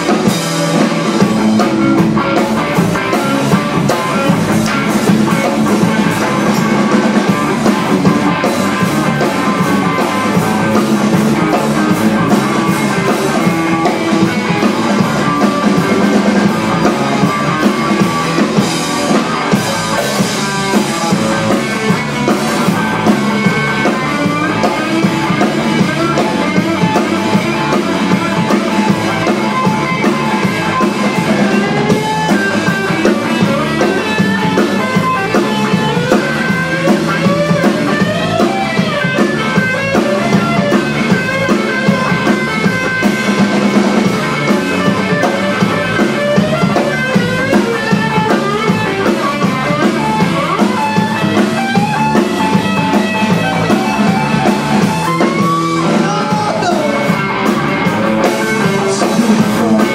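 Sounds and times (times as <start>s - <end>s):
drum kit: 0.0s - 59.9s
electric bass: 0.0s - 59.9s
electric guitar lead: 0.0s - 59.9s.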